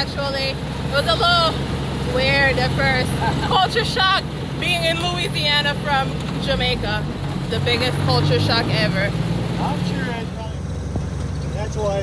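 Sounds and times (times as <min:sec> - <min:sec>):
utility vehicle engine running: 0:00.0 - 0:12.0.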